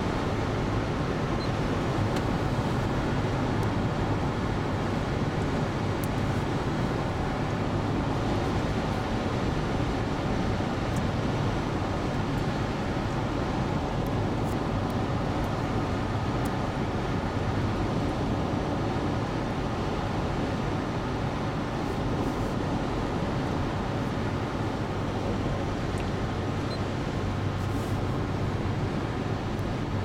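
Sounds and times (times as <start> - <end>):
car cabin road noise: 0.0 - 30.0.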